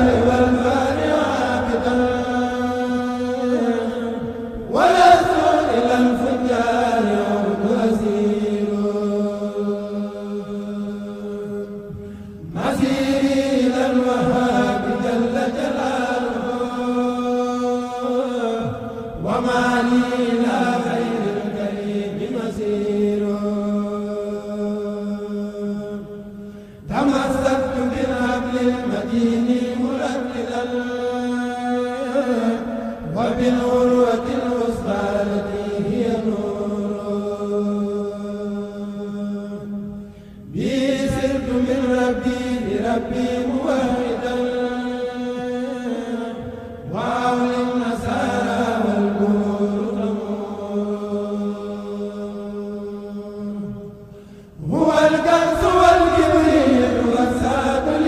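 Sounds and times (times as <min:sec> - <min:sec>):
men chanting through microphones: 0:00.0 - 0:58.0.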